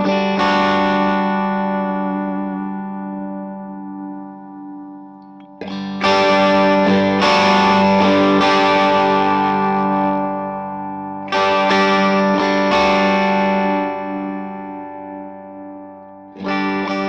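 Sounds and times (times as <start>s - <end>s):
electric guitar chords ringing: 0.0s - 17.0s.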